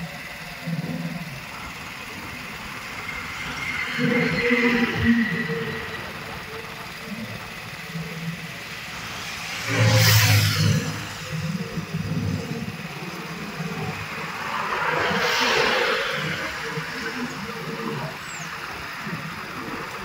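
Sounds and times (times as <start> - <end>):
motor vehicles passing: 0.0 - 20.0.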